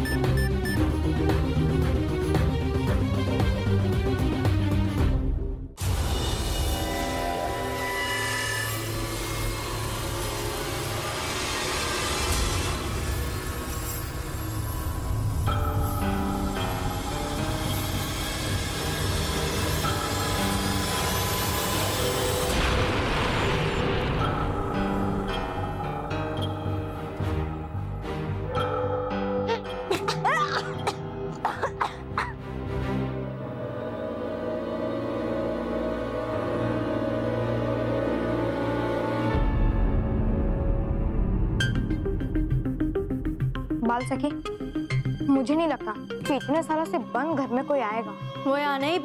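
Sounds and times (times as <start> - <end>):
background music: 0.0 - 49.0
children coughing: 29.7 - 32.4
groan of disgust: 29.9 - 30.9.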